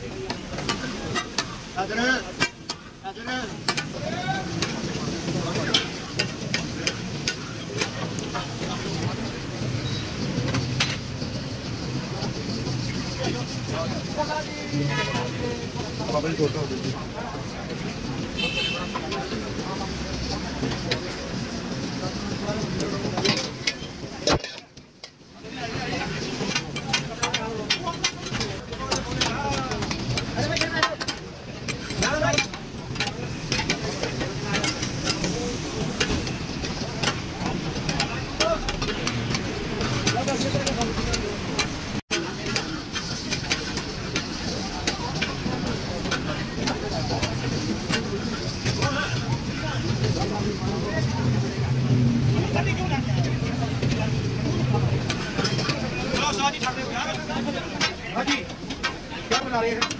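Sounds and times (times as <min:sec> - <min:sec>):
meat sizzling on griddle: 0:00.0 - 0:59.9.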